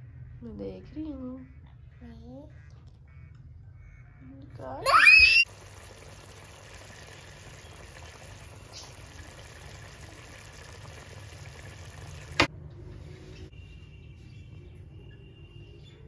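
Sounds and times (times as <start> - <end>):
child squealing: 4.8 - 5.5
curry simmering in a pan: 5.4 - 12.5.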